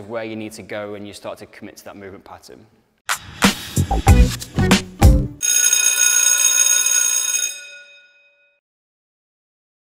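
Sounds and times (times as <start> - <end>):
bell-like metallic chime: 5.4 - 8.6.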